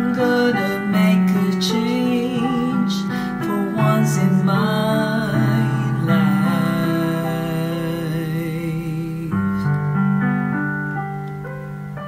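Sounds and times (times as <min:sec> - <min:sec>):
person singing with vibrato: 0:00.0 - 0:09.9
piano chords: 0:00.0 - 0:12.0.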